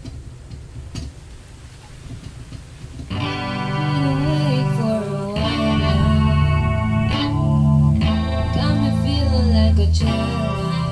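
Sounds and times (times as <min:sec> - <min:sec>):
steady low rumble: 0:00.0 - 0:10.9.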